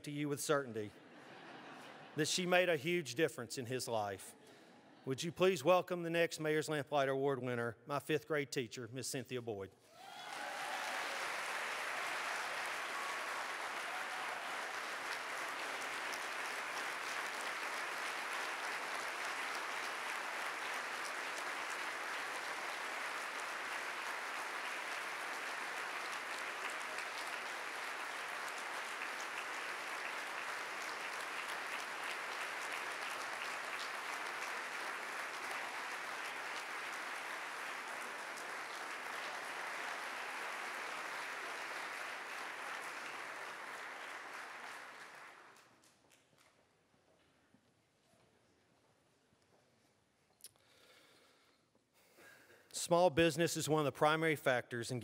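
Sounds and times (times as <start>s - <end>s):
large audience applauding: 9.9s - 46.5s.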